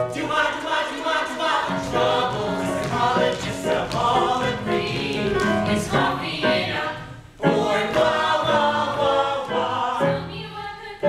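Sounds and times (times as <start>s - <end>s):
mixed voices singing in harmony: 0.0s - 11.0s.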